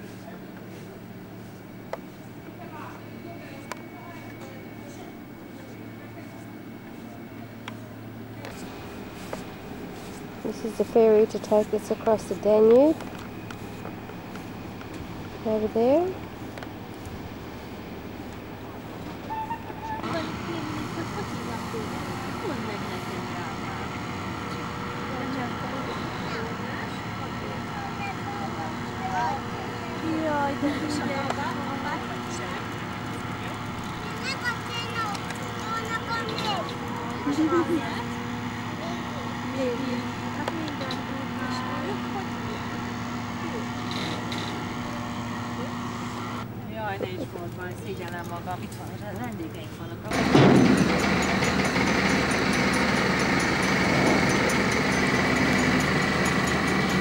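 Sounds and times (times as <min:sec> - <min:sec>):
faint voices: 0:00.0 - 0:51.2
boat engine running: 0:00.0 - 0:57.0.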